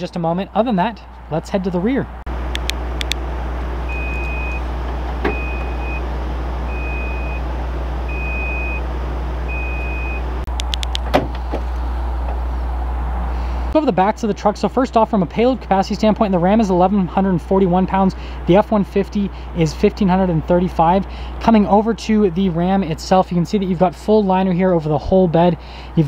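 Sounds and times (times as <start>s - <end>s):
low hum: 0.0s - 25.9s
tailgate being lowered: 3.6s - 6.1s, 10.8s - 12.5s
high electronic beeps: 3.9s - 4.6s.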